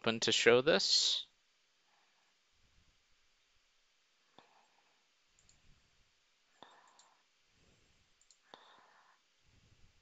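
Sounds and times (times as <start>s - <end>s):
computer mouse clicks: 5.4s - 5.6s, 6.7s - 7.2s, 8.2s - 8.4s.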